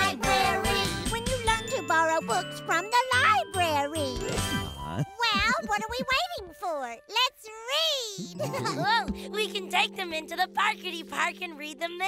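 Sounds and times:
children's song singing: 0.0 - 4.0
light instrumental backing: 0.0 - 12.0.

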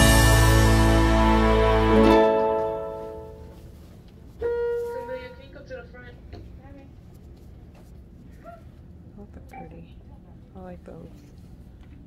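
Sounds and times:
loud tune: 0.0 - 3.6.

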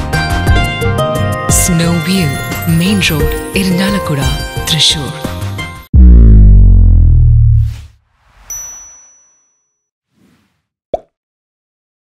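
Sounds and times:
deep boom with falling sweep: 5.9 - 8.0
whoosh: 6.0 - 8.7
bright ding: 8.5 - 9.8.

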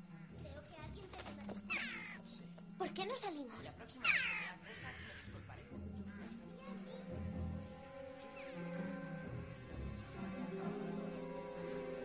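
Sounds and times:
crow cawing: 1.7 - 2.3, 4.0 - 6.4.

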